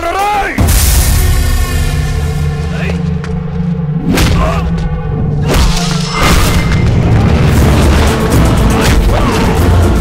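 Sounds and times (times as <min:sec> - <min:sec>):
booming film score with heavy bass: 0:00.0 - 0:10.0.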